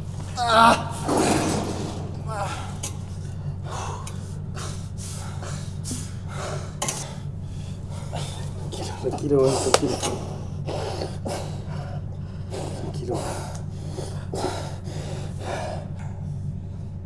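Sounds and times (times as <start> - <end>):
steady low hum: 0.0 - 17.0
man gasping and groaning: 2.2 - 16.5.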